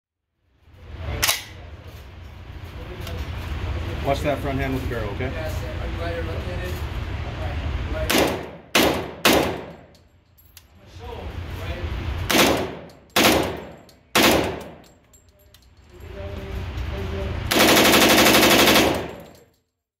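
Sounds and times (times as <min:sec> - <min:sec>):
submachine gun shots: 0:08.1 - 0:09.9, 0:12.3 - 0:14.8, 0:17.5 - 0:19.4.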